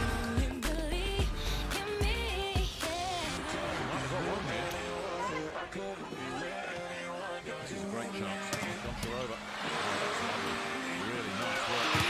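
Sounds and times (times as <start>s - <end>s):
background music: 0.0s - 12.0s
arena crowd noise: 2.8s - 12.0s.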